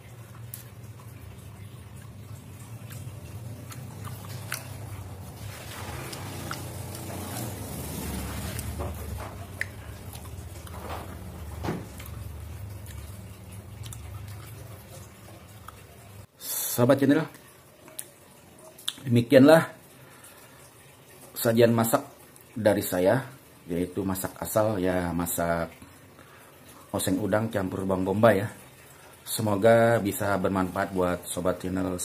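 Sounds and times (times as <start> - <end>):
person chewing food: 0.2 - 16.3.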